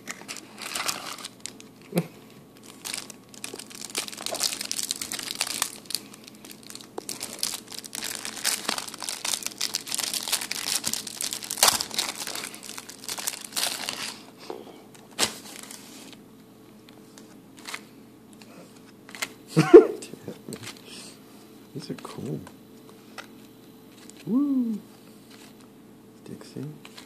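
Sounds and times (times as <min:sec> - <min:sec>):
plastic wrapper crinkling and tearing: 0:00.0 - 0:14.3, 0:15.0 - 0:16.2.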